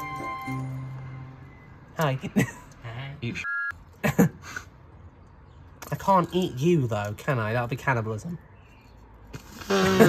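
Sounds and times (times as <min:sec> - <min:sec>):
young man laughing: 0:04.0 - 0:04.5.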